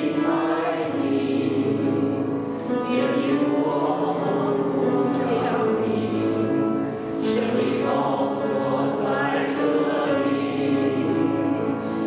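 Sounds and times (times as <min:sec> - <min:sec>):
group singing a hymn: 0:00.0 - 0:12.0.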